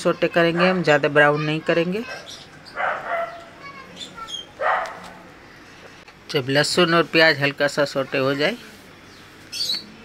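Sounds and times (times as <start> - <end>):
dog barking: 2.8 - 3.5, 4.6 - 5.2.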